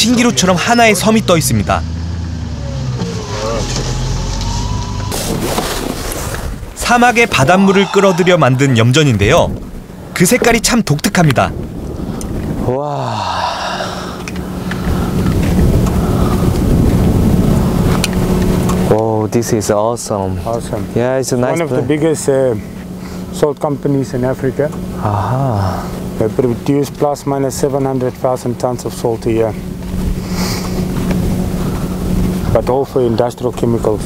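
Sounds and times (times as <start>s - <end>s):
vehicle engine hum: 0.0s - 34.0s
wind noise: 4.5s - 18.9s
faint steady hum: 11.5s - 18.9s.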